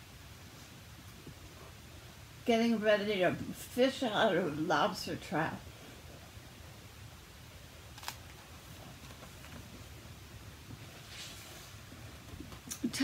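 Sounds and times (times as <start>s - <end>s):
soft book rustle: 8.0s - 12.9s.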